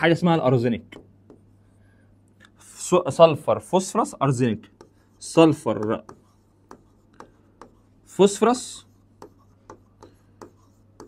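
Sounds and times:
steady low hum: 0.0s - 11.0s
stylus tapping on touchscreen: 0.8s - 1.5s, 5.6s - 7.9s, 9.2s - 11.0s.

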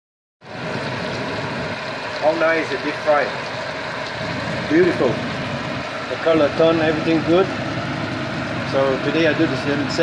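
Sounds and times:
meat deep-frying in hot oil: 0.4s - 10.0s.

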